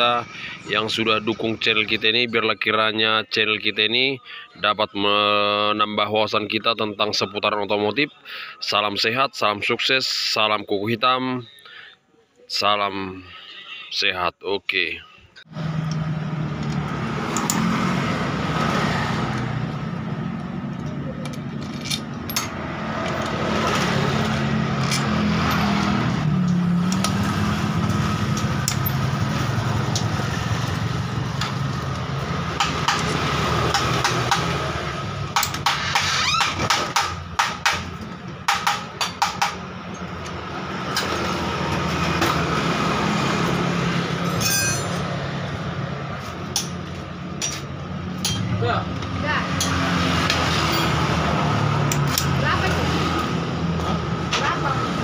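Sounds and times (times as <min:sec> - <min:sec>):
wrench turning bolts: 0:20.8 - 0:23.4.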